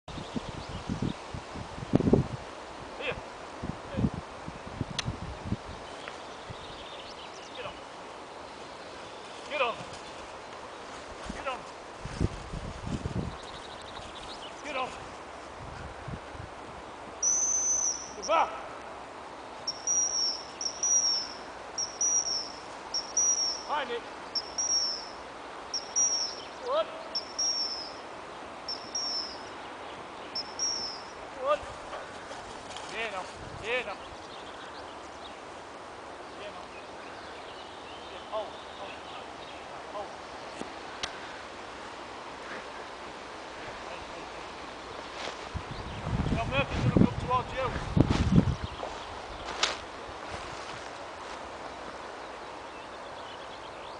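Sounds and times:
outdoor rustling: 0:00.0 - 0:53.9
high-pitched training whistle blast: 0:17.2 - 0:18.3
high thin bird call: 0:17.2 - 0:18.6, 0:19.6 - 0:29.7, 0:30.3 - 0:31.2.

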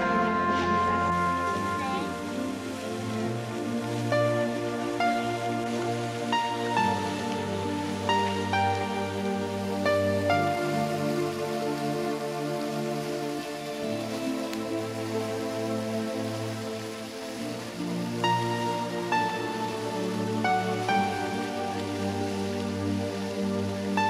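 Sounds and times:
calm instrumental music: 0:00.0 - 0:24.0
slow melody of held notes: 0:00.0 - 0:24.0
soft sustained chords: 0:00.0 - 0:24.0.

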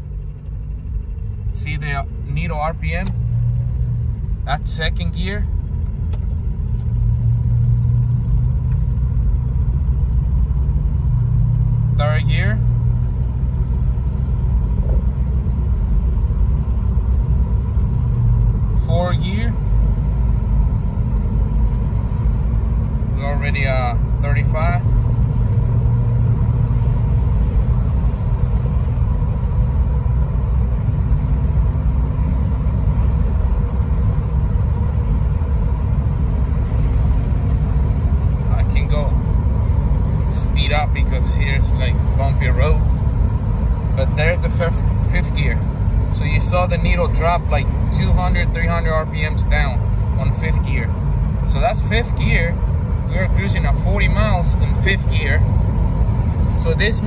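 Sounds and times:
diesel engine low rumble: 0:00.0 - 0:57.0
road noise inside car: 0:00.0 - 0:57.0.

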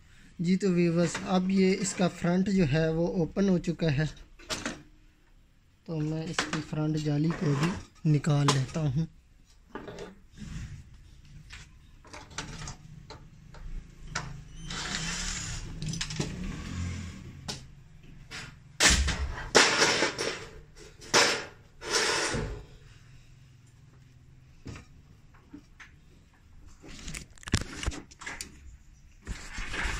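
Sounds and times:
metal scraping and rattling on plastic: 0:05.9 - 0:09.1, 0:12.0 - 0:16.3, 0:19.2 - 0:22.6, 0:26.7 - 0:29.9.

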